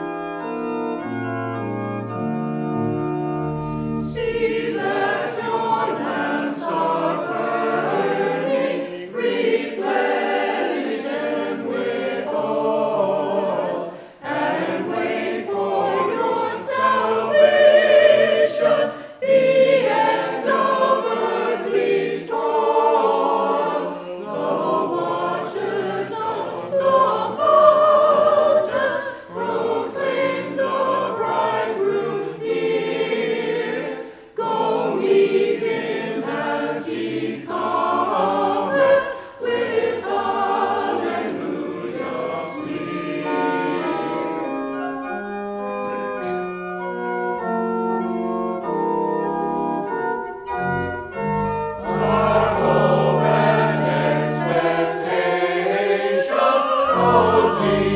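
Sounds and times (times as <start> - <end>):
choir singing: 0.0 - 57.9.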